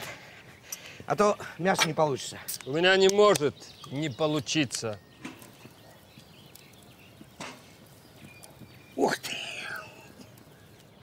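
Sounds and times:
faint high chirps: 3.6s - 11.0s.

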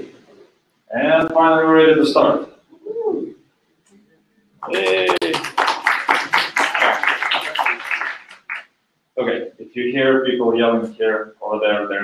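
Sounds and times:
audience cheering: 4.6s - 8.6s
audience applauding: 4.6s - 8.7s.

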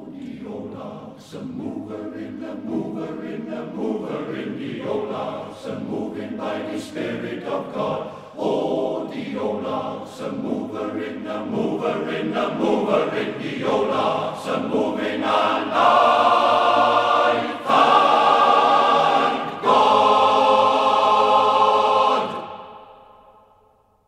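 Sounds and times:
male voice choir singing: 0.0s - 23.0s.

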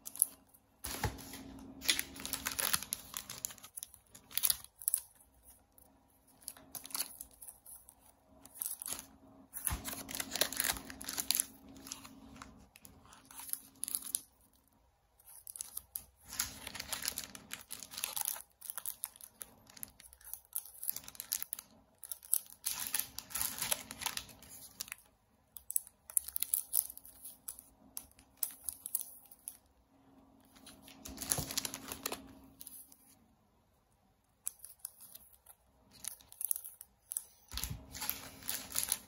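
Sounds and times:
plastic sleeves crinkling: 0.0s - 29.7s, 30.3s - 33.2s, 34.4s - 39.0s.

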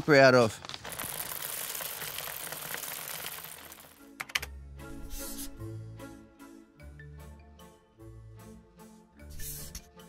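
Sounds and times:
beans pouring into a sack: 0.2s - 4.0s.

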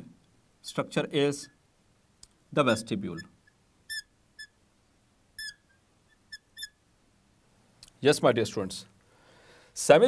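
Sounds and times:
marker squeaking on glass: 3.1s - 4.6s, 5.4s - 6.8s.

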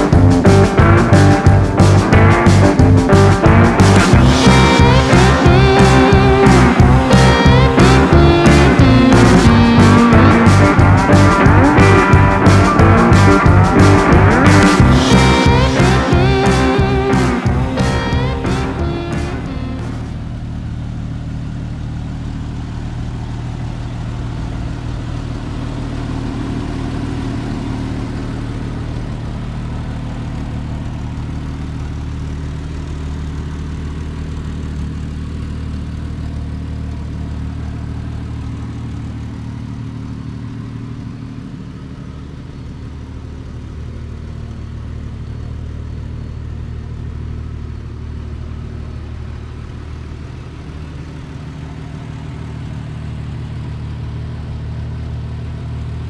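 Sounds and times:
car engine idling: 0.0s - 56.0s.

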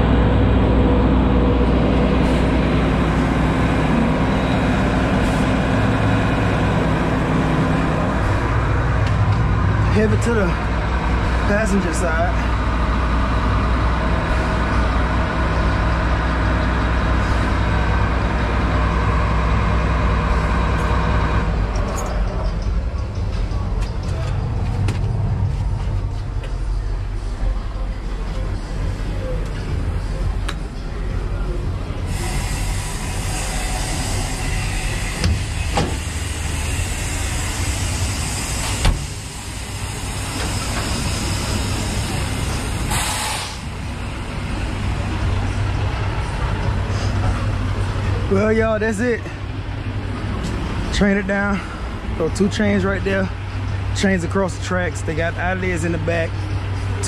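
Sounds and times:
tracked machine engine running: 0.0s - 57.0s.

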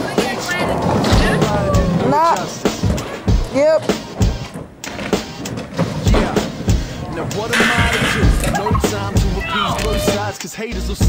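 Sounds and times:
hip-hop music with drum beat: 0.0s - 11.0s.

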